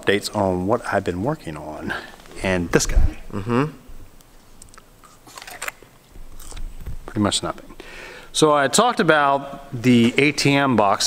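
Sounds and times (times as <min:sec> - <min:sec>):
chewing crunch: 0:04.6 - 0:06.9
crunching bite into apple: 0:04.7 - 0:05.8, 0:06.4 - 0:06.7.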